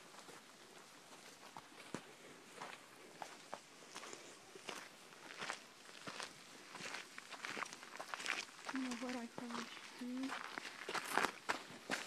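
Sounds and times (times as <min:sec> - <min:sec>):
footsteps crunching on dirt: 0:00.0 - 0:12.0.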